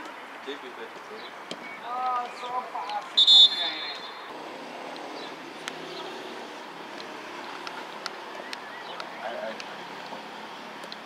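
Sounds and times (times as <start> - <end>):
faint outdoor background noise: 0.0 - 11.0
referee's whistle blast: 3.2 - 4.2.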